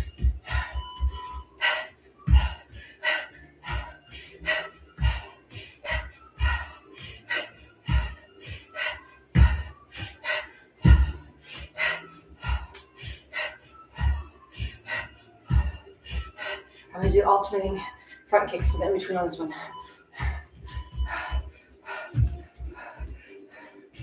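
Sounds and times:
workout music with steady beat: 0:00.0 - 0:24.0.

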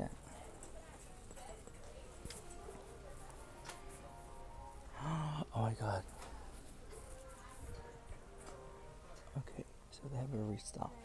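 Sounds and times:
store background noise: 0:00.0 - 0:11.0.

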